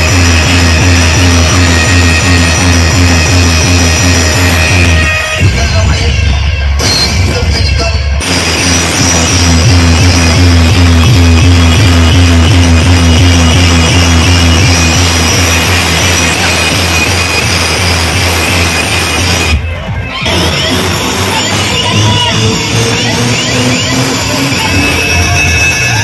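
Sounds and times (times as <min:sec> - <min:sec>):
loud electronic dance music: 0:00.0 - 0:26.0.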